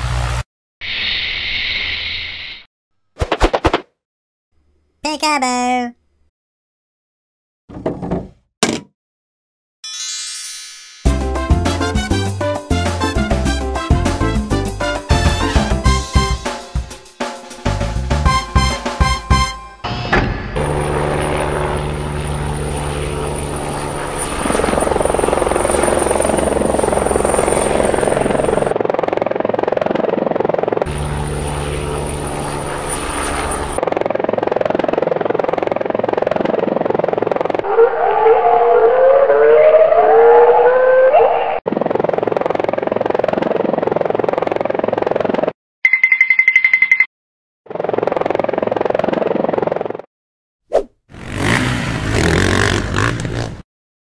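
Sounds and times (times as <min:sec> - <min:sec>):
helicopter rotor and turbine whine: 0:20.4 - 0:37.6, 0:41.7 - 0:45.6, 0:47.7 - 0:50.1.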